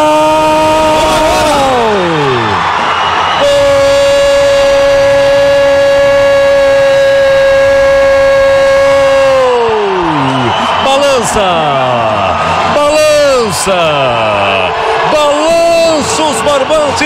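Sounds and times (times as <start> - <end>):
commentator shouting goal: 0.0 - 2.7, 3.4 - 17.0.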